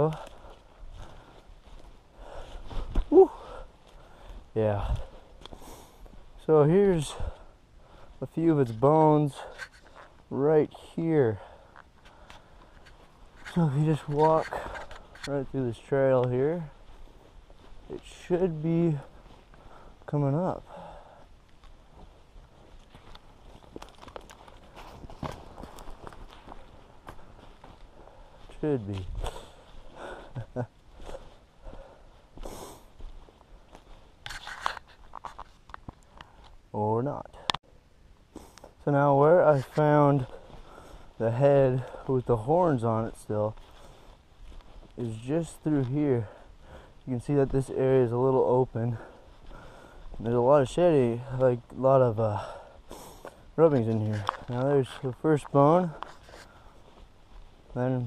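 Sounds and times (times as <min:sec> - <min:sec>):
footsteps through forest litter: 0:00.0 - 0:36.7, 0:38.3 - 0:58.0
person exclaiming: 0:03.1 - 0:03.5.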